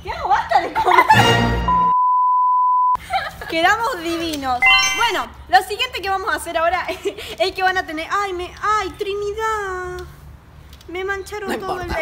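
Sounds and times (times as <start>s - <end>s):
high censor beep: 1.8s - 3.0s, 4.6s - 5.3s.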